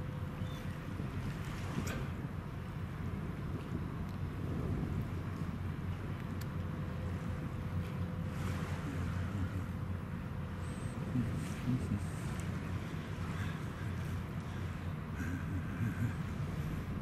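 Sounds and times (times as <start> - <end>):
ship engines droning: 0.0 - 17.0
wind rumbling on microphone: 0.0 - 17.0
faint clicks: 6.2 - 6.7.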